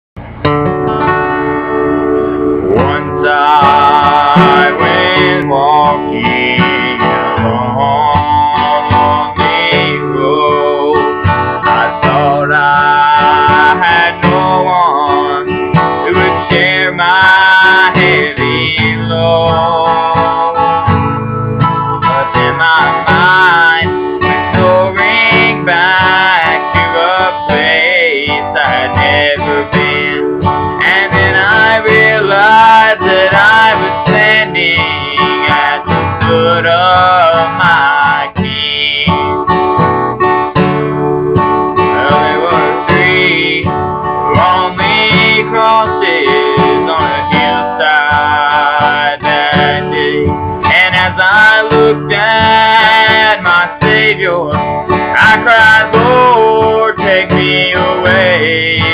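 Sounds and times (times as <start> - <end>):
acoustic guitar: 0.2 - 58.9
man singing: 0.8 - 39.6, 40.6 - 58.9.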